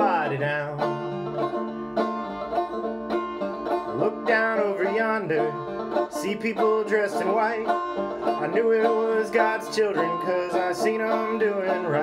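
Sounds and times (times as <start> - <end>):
banjo plucked notes: 0.0 - 12.0.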